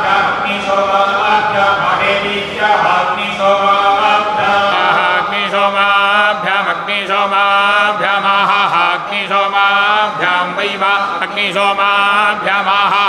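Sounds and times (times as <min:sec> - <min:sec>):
men chanting melodic verses: 0:00.0 - 0:13.0.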